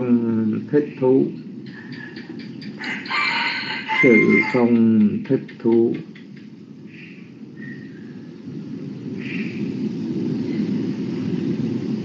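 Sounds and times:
rooster crowing: 0:02.8 - 0:04.8.

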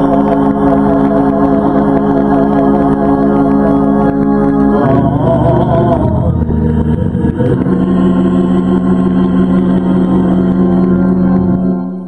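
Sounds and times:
organ holding a chord: 0:00.0 - 0:12.0
person singing: 0:00.0 - 0:12.0.

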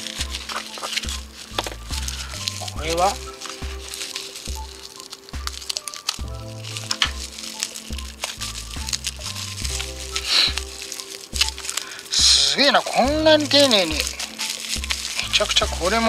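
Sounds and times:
background music with bass line: 0:00.0 - 0:16.0
bubble wrap crinkling: 0:00.0 - 0:16.0.

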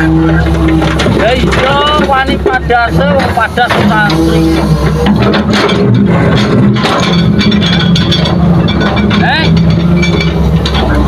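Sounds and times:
heavy diesel engines running: 0:00.0 - 0:11.0
metal knocks and clinks: 0:00.3 - 0:11.0.

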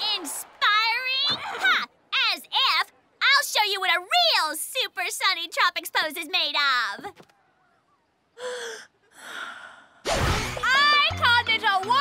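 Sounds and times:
woman gasping breaths: 0:08.4 - 0:10.0.

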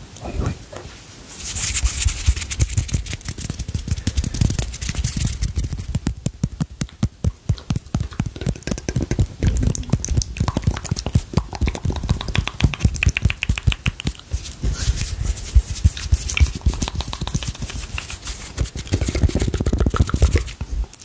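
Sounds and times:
hissing rub: 0:01.3 - 0:20.7
low thumps: 0:02.1 - 0:17.5.

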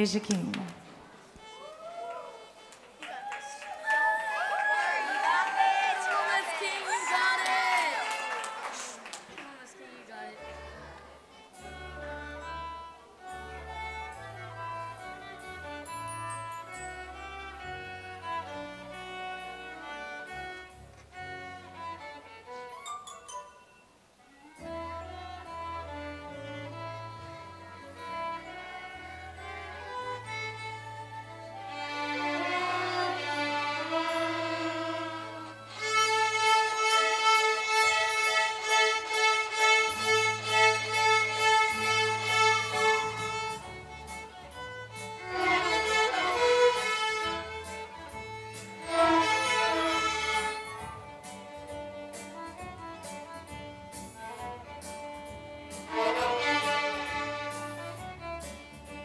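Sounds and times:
violin ensemble playing pop tune: 0:10.4 - 0:23.3, 0:24.5 - 0:59.0.

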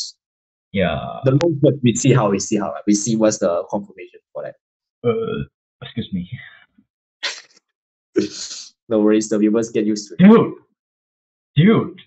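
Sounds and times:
man sneezing: 0:08.2 - 0:08.7.

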